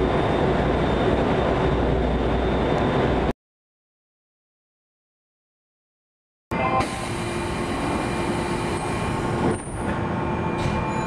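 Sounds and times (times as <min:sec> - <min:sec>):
train wheels on rails rumbling: 0:06.9 - 0:11.0.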